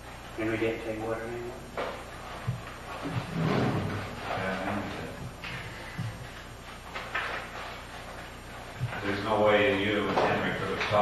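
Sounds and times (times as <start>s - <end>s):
low tape hum: 0.0s - 11.0s
muffled man's voice: 8.9s - 11.0s.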